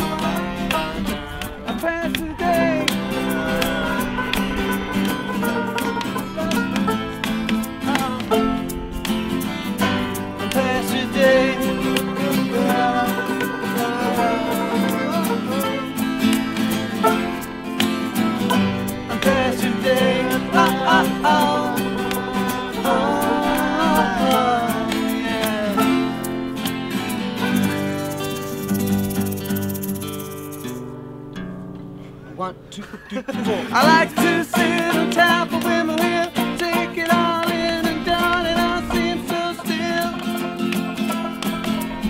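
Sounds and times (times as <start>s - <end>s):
hand shaker: 0.0s - 30.8s, 33.7s - 42.0s
acoustic guitars strummed: 0.0s - 42.0s
wavering melody line: 2.4s - 30.8s.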